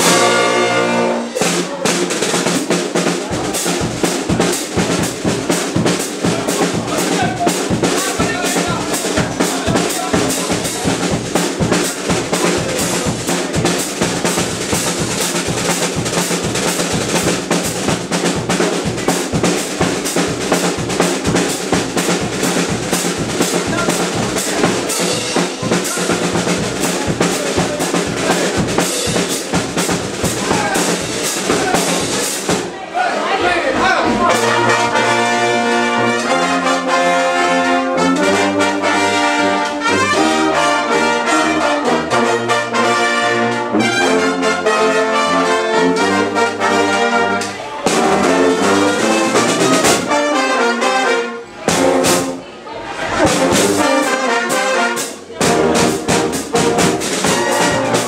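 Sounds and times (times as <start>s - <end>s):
brass band playing: 0.0s - 58.0s
snare and bass drum beat: 1.3s - 32.8s, 34.0s - 50.4s, 51.6s - 52.4s, 53.2s - 58.0s.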